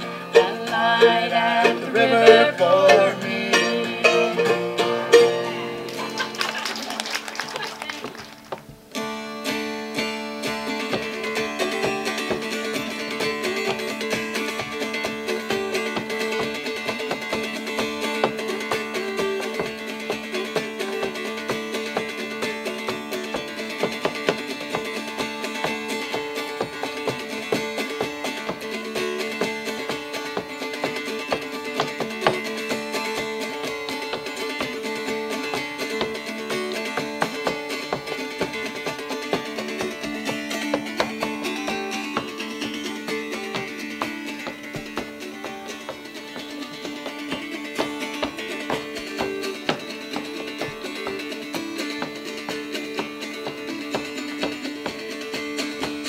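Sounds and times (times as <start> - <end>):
mountain dulcimer tune: 0.0 - 6.6, 8.8 - 56.0.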